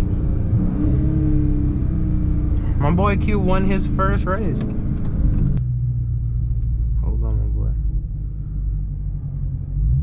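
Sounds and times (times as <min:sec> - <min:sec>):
car engine running low: 0:00.0 - 0:10.0.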